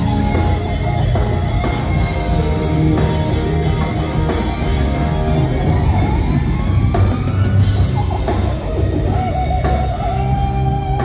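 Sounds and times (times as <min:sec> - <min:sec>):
guitar note gliding upward: 0:00.0 - 0:11.0
live rock band playing: 0:00.0 - 0:11.0.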